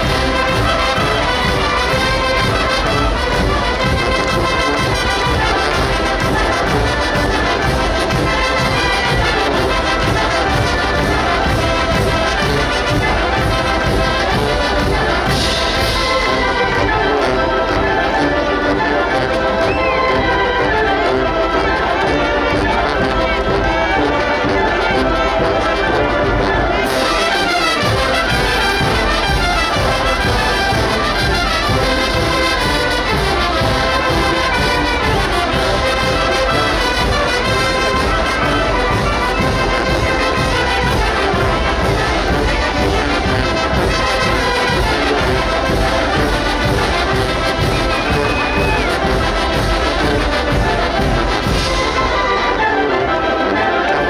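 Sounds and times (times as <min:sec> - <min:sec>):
wind band playing dance tune: 0:00.0 - 0:54.0.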